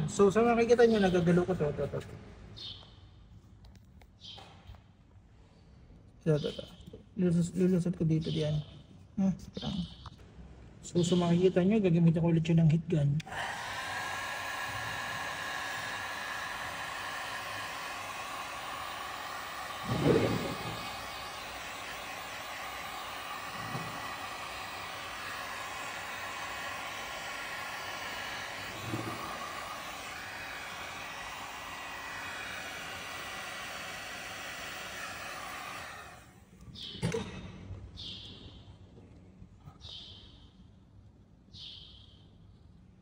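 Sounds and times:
heat gun blowing: 13.2 - 36.6.

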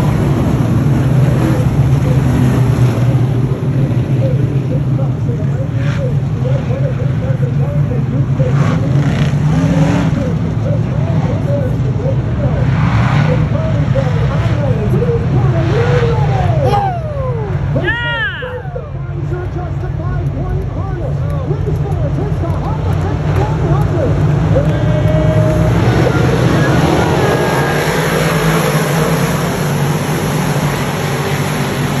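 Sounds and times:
low drone of engines: 0.0 - 32.0
race car engines passing: 0.0 - 32.0.

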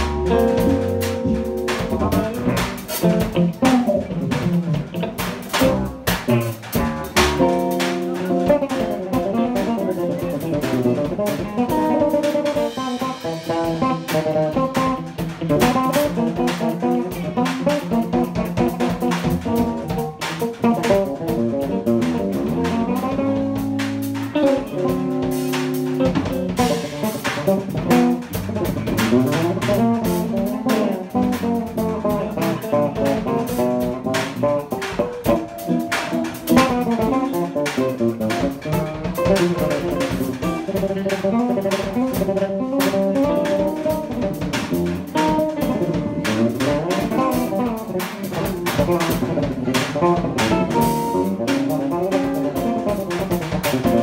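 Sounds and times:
drum kit with cymbals: 0.0 - 54.0
electric bass: 0.0 - 54.0
electric guitar melody: 0.0 - 54.0.

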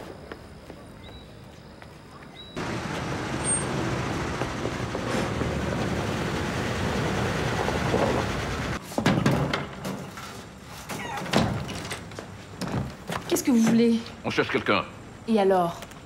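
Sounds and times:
car approaching slowly: 2.6 - 8.8.

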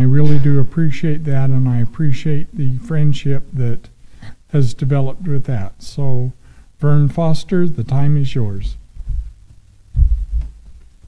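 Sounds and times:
footsteps thumping: 8.9 - 11.0.

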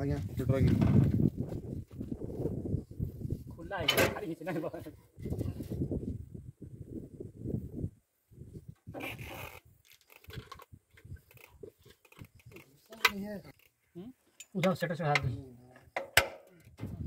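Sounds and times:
knocks and rattles of handling: 9.8 - 16.9.

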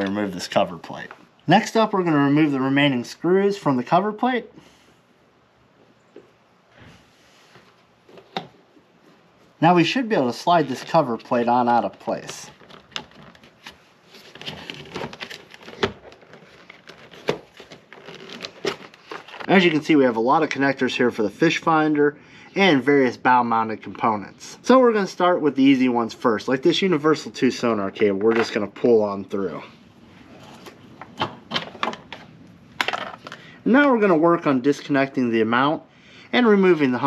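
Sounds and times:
scraping and rustling: 10.4 - 19.5.

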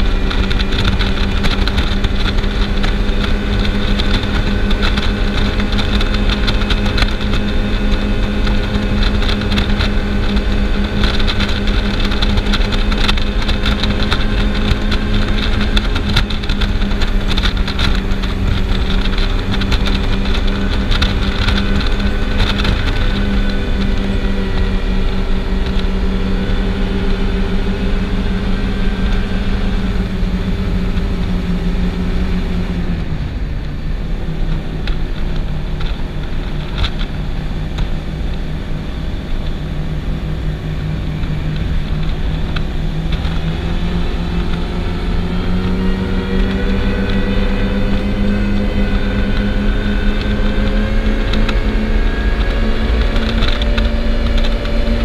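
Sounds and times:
boat engines at high speed: 0.0 - 55.0
constant rushing noise: 0.0 - 55.0.

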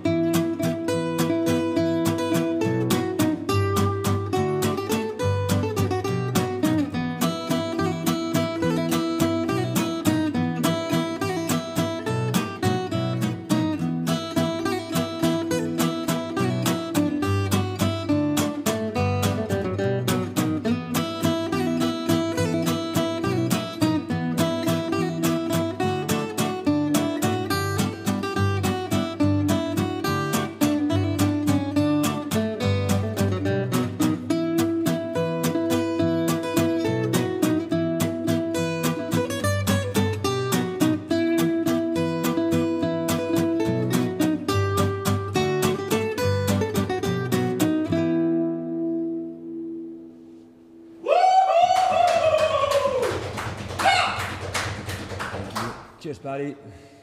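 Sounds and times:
acoustic guitars playing a waltz: 0.0 - 51.0.

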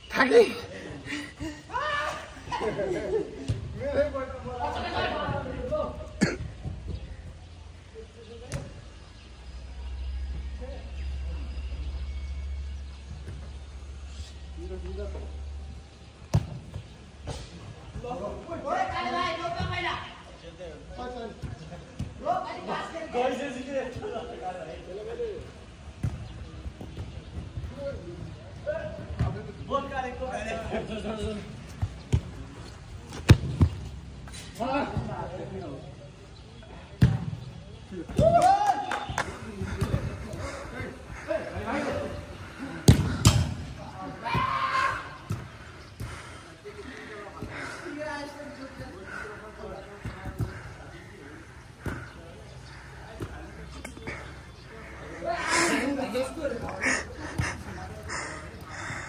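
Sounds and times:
short sharp cough: 6.2 - 6.5.

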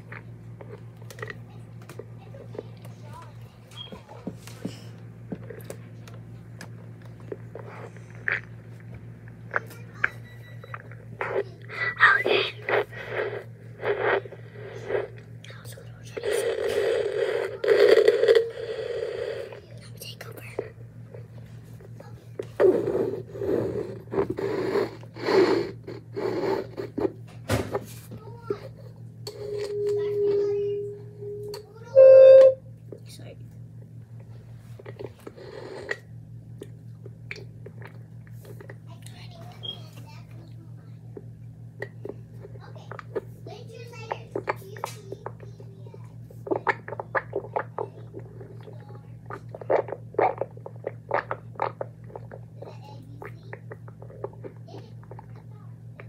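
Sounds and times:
electrical hum: 0.0 - 56.0
whispering into microphone: 15.4 - 16.2
short held tone: 29.3 - 32.7.

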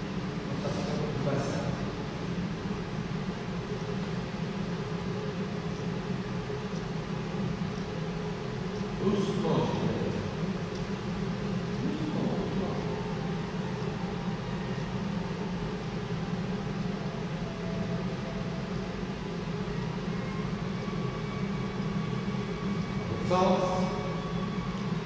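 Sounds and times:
low hum with hiss: 0.0 - 25.0.

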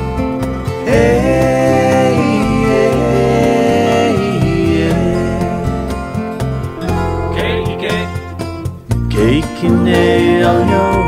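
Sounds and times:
acoustic guitar picking: 0.0 - 11.0
bass: 0.0 - 11.0
steady beat: 0.9 - 9.1
high sliding melody line: 5.1 - 8.6.

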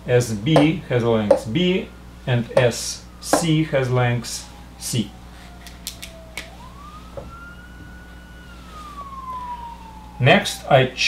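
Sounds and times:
faint siren wailing: 0.6 - 11.0.

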